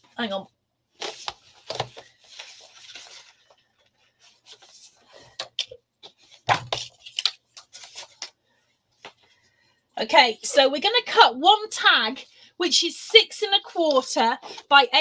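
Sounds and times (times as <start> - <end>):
card sheets rubbing and sliding: 1.0 - 3.6, 4.2 - 8.3.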